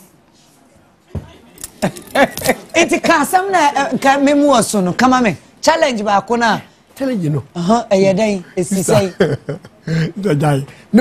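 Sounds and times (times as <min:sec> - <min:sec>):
people talking: 0:00.6 - 0:11.0.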